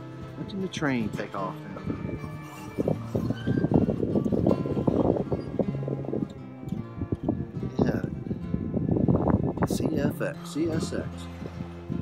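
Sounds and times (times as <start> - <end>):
acoustic blues guitar: 0.0 - 12.0.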